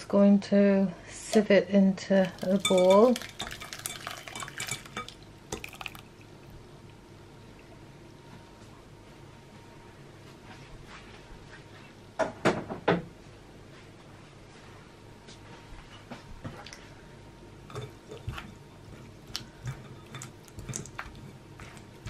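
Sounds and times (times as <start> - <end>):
kitchenware clattering: 2.3 - 5.8, 17.7 - 18.6, 19.5 - 21.4.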